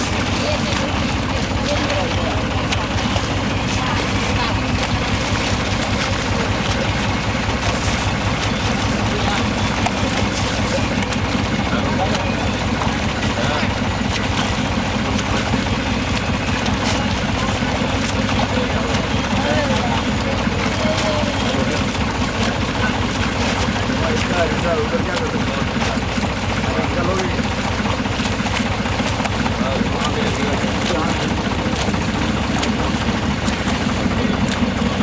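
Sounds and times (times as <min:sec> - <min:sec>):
motorboat engine running: 0:00.0 - 0:35.0
water rushing and splashing: 0:00.0 - 0:35.0.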